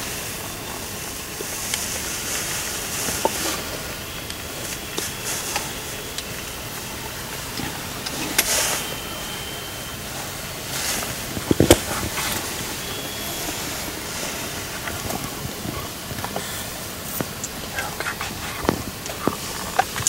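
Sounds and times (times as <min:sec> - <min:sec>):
fabric rustling: 0:00.0 - 0:20.0
steady background hiss: 0:00.0 - 0:20.0.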